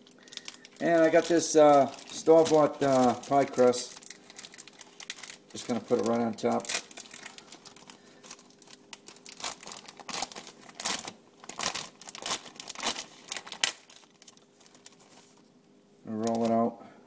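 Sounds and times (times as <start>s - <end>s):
packaging crinkling and tearing: 0.0s - 15.4s, 16.2s - 16.6s.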